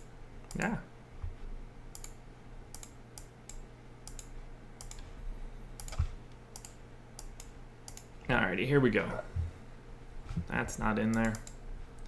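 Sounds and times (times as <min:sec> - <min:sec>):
faint low hum: 0:00.0 - 0:12.0
keyboard and mouse clicks: 0:01.9 - 0:05.1, 0:05.8 - 0:08.1, 0:11.0 - 0:12.0.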